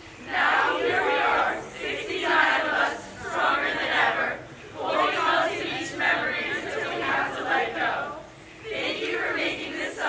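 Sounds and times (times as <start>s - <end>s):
girls chanting a song: 0.2s - 10.0s.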